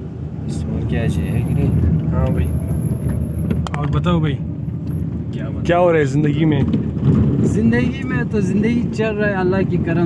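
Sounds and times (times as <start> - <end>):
car rumbling on dirt road: 0.0 - 10.0.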